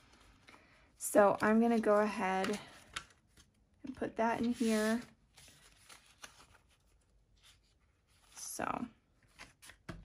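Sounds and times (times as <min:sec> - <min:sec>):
paper banknotes rustling: 0:04.4 - 0:08.3.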